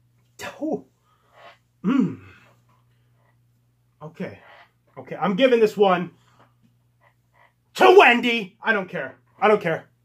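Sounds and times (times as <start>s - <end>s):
man's short vocal burst: 1.8s - 2.4s
man humming: 1.8s - 2.5s.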